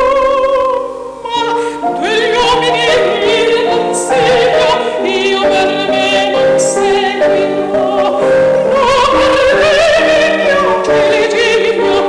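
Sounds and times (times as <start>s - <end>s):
piano accompaniment: 0.0s - 12.0s
soprano singing with vibrato: 0.0s - 12.0s.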